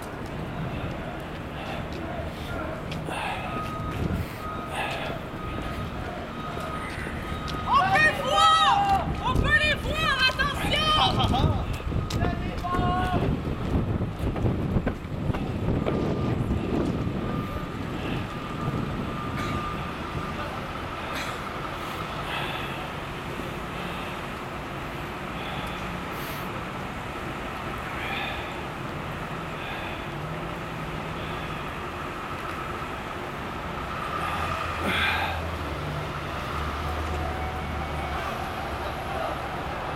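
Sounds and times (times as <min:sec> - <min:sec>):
thin steady whine: 0:00.0 - 0:08.8
vehicles running: 0:00.0 - 0:39.9.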